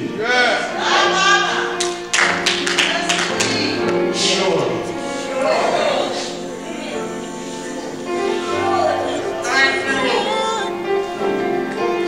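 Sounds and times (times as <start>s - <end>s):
held instrument chords: 0.0s - 12.0s
man singing a hymn: 4.2s - 11.2s.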